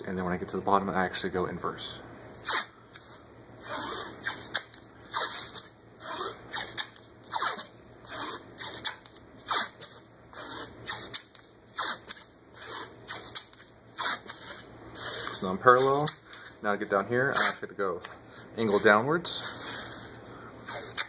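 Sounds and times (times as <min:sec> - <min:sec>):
athletic tape tearing: 0:02.3 - 0:21.0.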